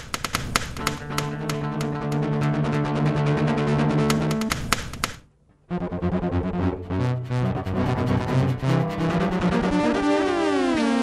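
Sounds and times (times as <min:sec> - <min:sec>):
sharp taps on cello: 0:00.0 - 0:02.2, 0:04.1 - 0:05.2.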